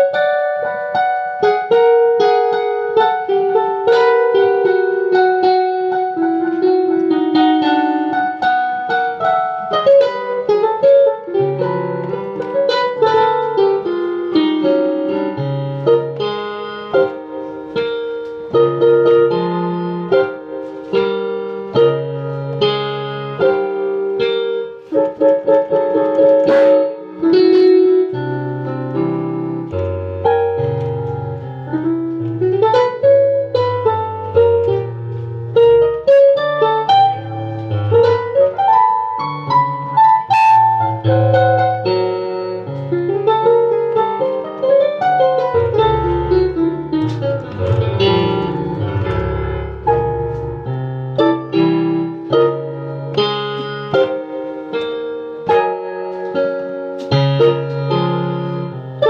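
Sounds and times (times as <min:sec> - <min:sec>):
piano bass line: 0:00.0 - 0:59.0
piano melody: 0:00.0 - 0:59.0.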